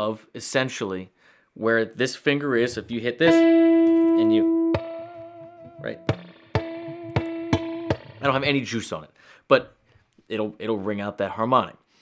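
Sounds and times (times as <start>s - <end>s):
electric guitar tap harmonics: 3.2s - 8.6s.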